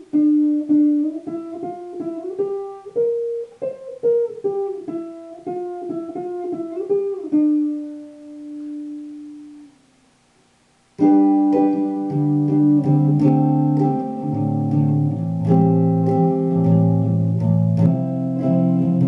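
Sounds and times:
electric guitar melody: 0.0 - 9.9, 11.0 - 19.0.

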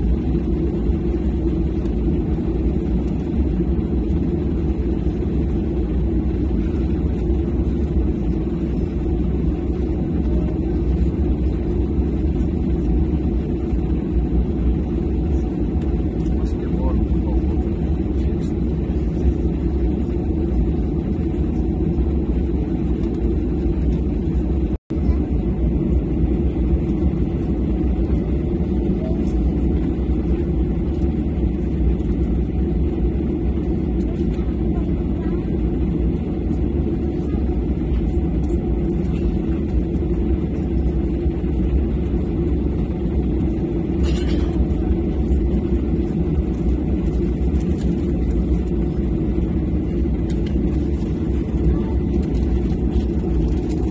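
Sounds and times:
low rumble in aircraft cabin: 0.0 - 53.9.

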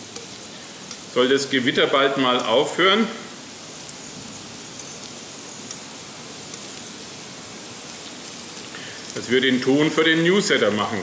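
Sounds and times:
potato slices frying on griddle: 0.0 - 11.0.

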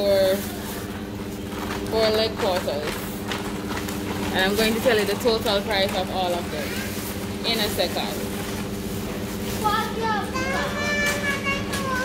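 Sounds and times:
children calling out: 9.8 - 12.0.

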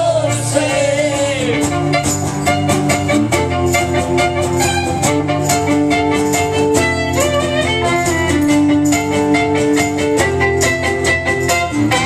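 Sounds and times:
strummed acoustic guitar: 0.0 - 12.0
violin melody: 1.5 - 12.0.

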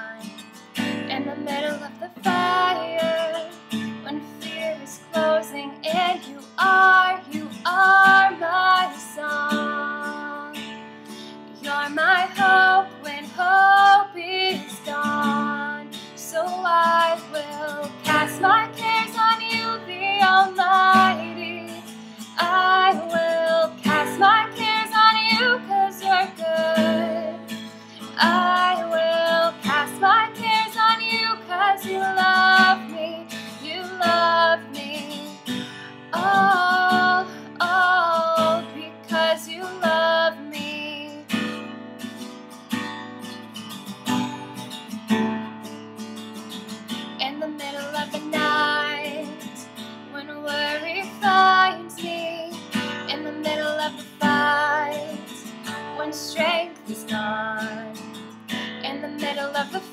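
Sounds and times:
woman singing: 0.0 - 41.7, 46.9 - 59.9
acoustic guitar strumming: 0.0 - 59.9.

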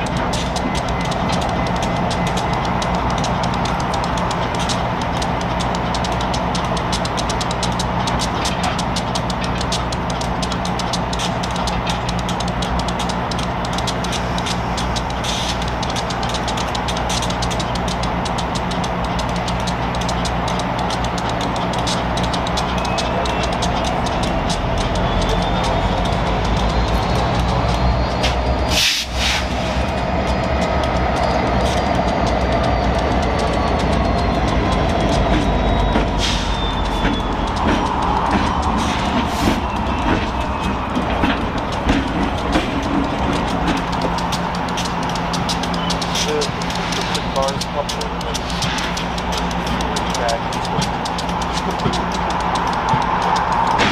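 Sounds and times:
diesel locomotive engine rumbling: 0.0 - 53.9.

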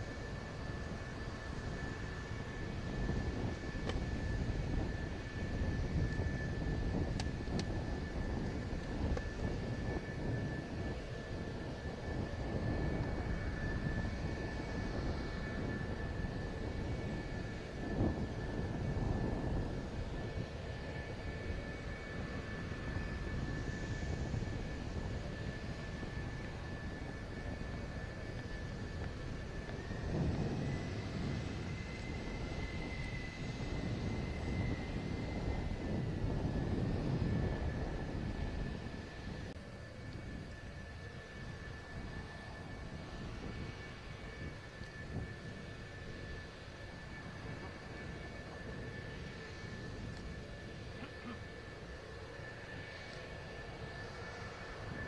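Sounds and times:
higher engine whine: 0.0 - 55.0
jet engines idling: 0.0 - 55.0.

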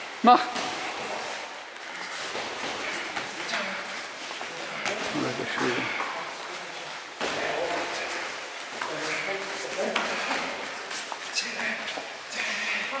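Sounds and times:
indistinct voices in echoing hall: 0.0 - 13.0.

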